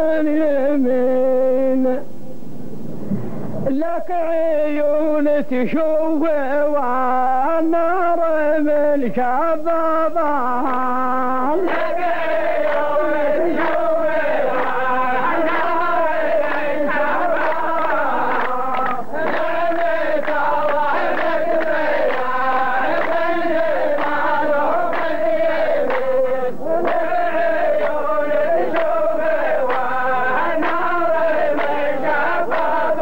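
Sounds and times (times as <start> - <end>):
men chanting in unison: 3.7 - 33.0
sharp hand clap: 12.6 - 12.9, 13.6 - 13.9, 17.4 - 25.2, 25.8 - 26.2, 26.8 - 27.2, 27.8 - 29.0, 29.6 - 33.0.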